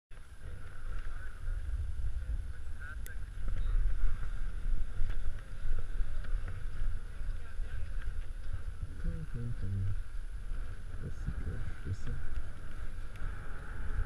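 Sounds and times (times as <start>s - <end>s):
wind buffeting microphone: 0.1s - 14.0s
skis scraping over snow: 0.2s - 14.0s.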